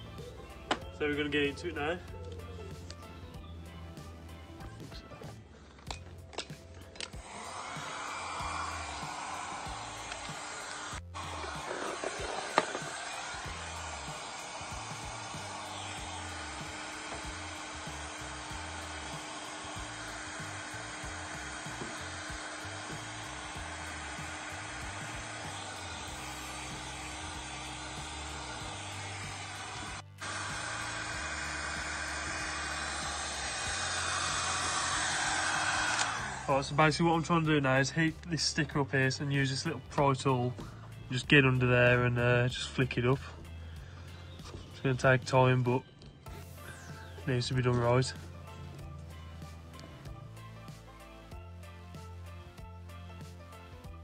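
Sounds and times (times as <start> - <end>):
heat gun blowing: 4.0 - 45.0, 46.3 - 52.0.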